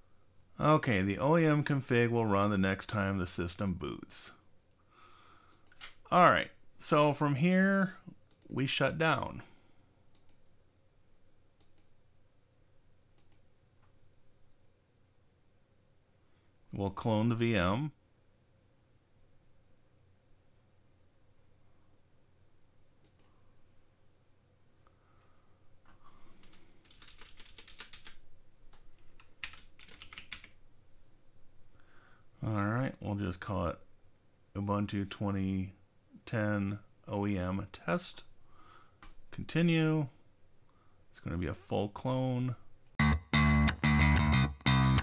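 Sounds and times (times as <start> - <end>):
faint steady hum: 0.0 - 43.6
computer mouse clicks: 5.5 - 6.0, 8.3 - 8.5, 10.1 - 10.4, 11.6 - 11.9, 13.2 - 13.5, 23.0 - 23.3
computer keyboard typing: 26.4 - 30.6.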